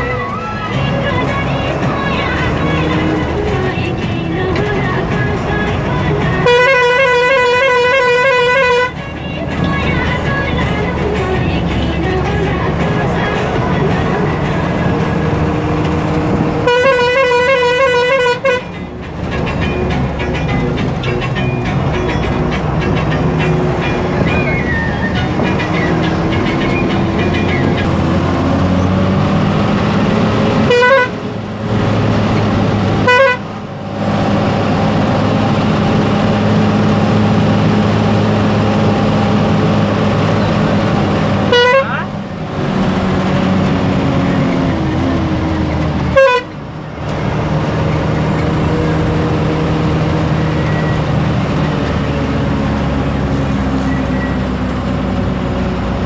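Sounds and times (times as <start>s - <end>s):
vehicle engine under load: 0.0s - 56.0s.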